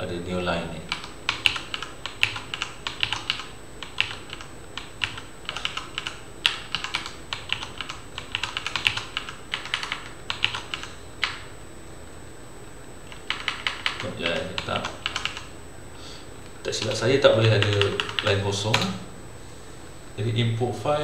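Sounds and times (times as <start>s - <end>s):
computer keyboard typing: 0.9s - 11.5s, 13.1s - 15.5s, 16.7s - 19.0s.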